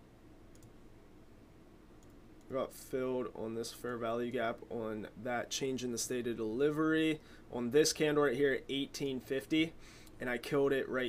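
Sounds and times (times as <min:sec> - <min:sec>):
low room hum: 0:00.0 - 0:11.0
computer mouse clicks: 0:00.5 - 0:00.8, 0:02.0 - 0:02.5.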